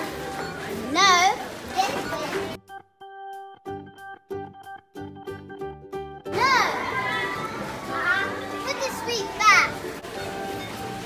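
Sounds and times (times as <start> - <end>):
supermarket ambience: 0.0 - 2.7, 6.3 - 11.0
plucked rhythmic background music: 0.0 - 11.0.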